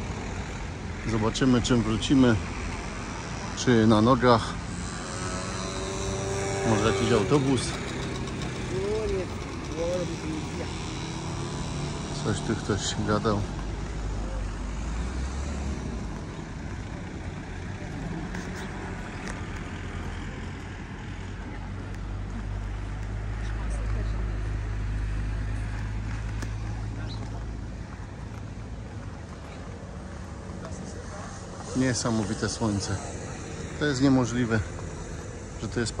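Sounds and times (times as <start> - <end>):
low engine hum: 0.0 - 36.0
outdoor background noise: 0.0 - 36.0
people talking: 6.6 - 10.8, 12.1 - 13.5, 30.6 - 34.7.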